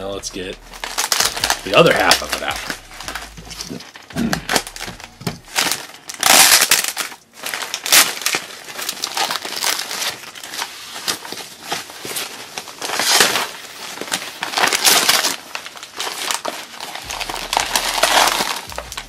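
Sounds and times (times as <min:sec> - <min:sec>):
plastic wrap crinkling: 0:00.0 - 0:19.0.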